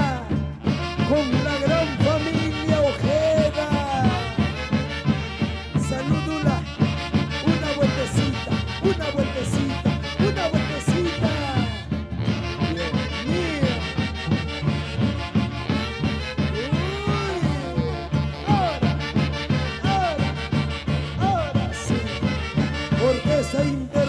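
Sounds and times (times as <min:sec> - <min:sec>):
steady drum beat: 0:00.0 - 0:24.0.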